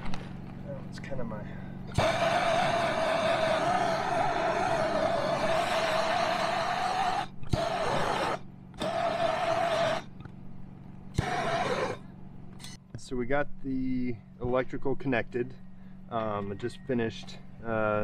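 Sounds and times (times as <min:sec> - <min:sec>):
propane torch hissing roar: 0:01.3 - 0:10.2, 0:11.1 - 0:12.1.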